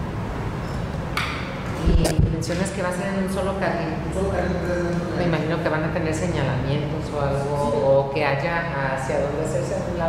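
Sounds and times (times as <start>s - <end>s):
microphone system hum and hiss: 0.0s - 10.0s.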